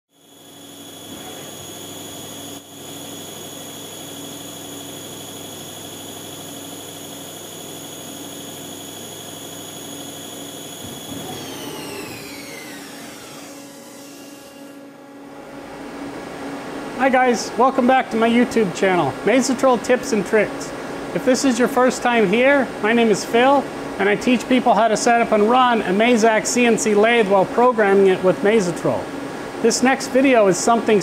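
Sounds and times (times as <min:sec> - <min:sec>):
lathe spindle whining: 0:00.2 - 0:15.0.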